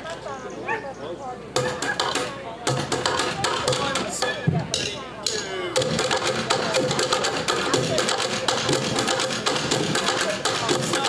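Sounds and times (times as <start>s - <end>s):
drumming on plastic buckets: 1.6s - 11.0s.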